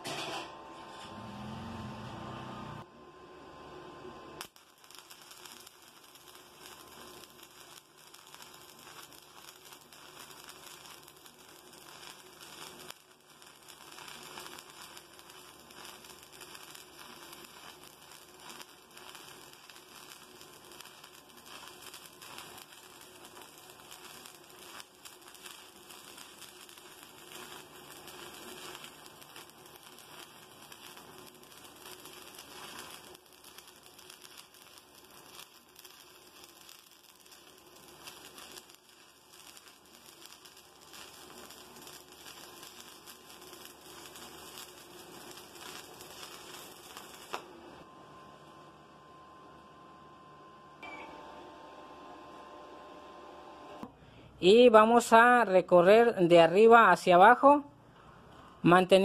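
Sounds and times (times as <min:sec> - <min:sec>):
welding arc crackling: 0:04.4 - 0:47.7.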